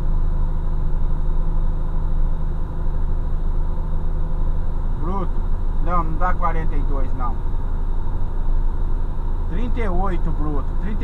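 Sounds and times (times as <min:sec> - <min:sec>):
truck diesel engine droning: 0:00.0 - 0:11.0.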